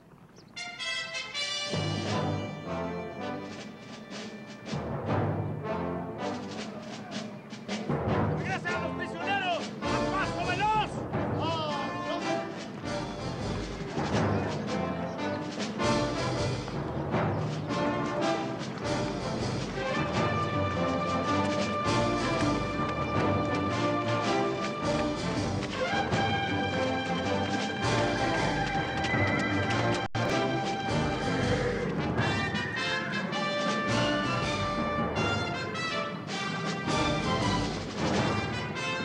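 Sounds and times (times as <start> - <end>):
brass: 0.5 - 39.0
orchestral film music: 0.6 - 39.0
timpani: 0.6 - 39.0.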